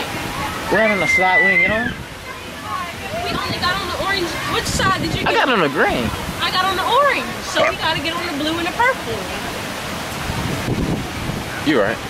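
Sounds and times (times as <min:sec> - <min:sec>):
rain falling: 0:00.0 - 0:12.0
wind rumbling on microphone: 0:00.0 - 0:12.0.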